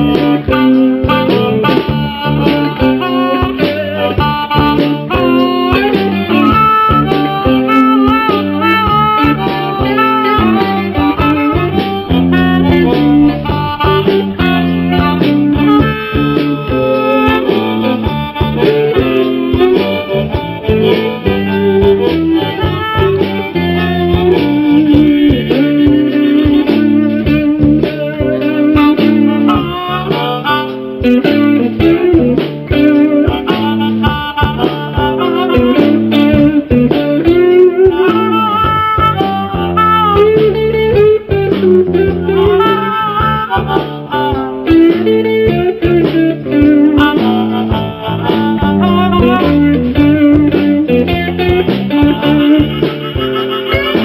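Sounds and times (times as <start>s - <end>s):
amplified blues harmonica: 0.0s - 54.0s
drum kit shuffle beat: 0.0s - 54.0s
electric guitars: 0.0s - 54.0s.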